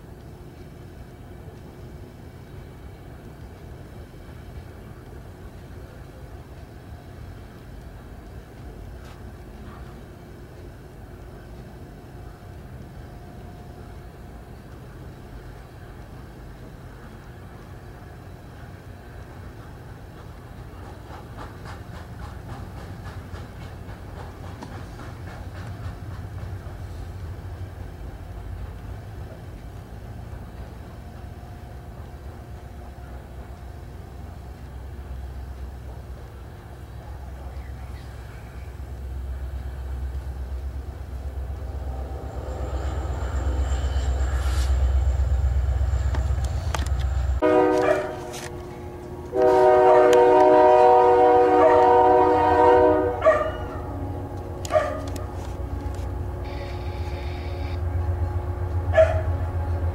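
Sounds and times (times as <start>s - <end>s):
rhythmic train wheel clicks: 0.0s - 51.2s, 53.2s - 59.9s
freight train rumbling past: 0.0s - 59.9s.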